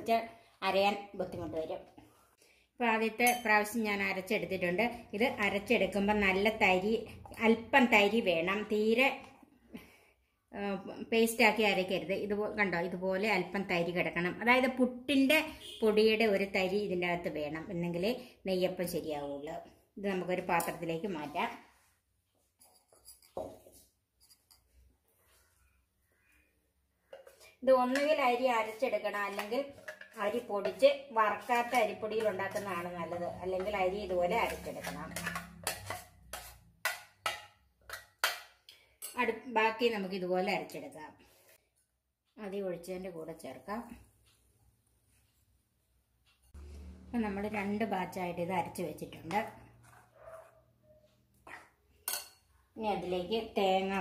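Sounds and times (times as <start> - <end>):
metal spoon scraping steel vessel: 22.6 - 24.8, 27.1 - 38.4.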